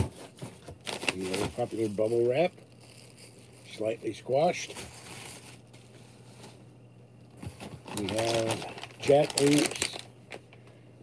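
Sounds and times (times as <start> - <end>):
rustling of packaged items: 0.0 - 6.7, 7.3 - 10.7
low steady hum: 0.0 - 11.0.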